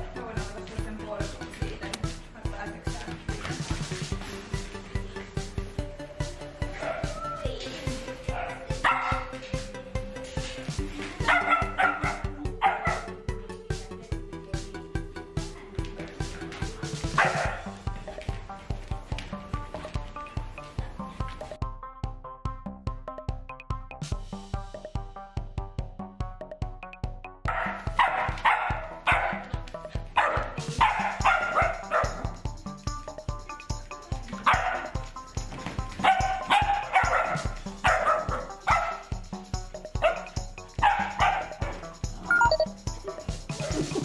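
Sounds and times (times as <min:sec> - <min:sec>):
electronic music with beat: 0:03.0 - 0:18.7, 0:36.4 - 0:44.0
puppy barking: 0:06.7 - 0:07.4, 0:08.3 - 0:09.4, 0:11.2 - 0:13.2, 0:17.1 - 0:17.7, 0:27.5 - 0:29.6, 0:30.2 - 0:32.4, 0:34.4 - 0:35.0, 0:36.0 - 0:39.1, 0:40.0 - 0:44.0.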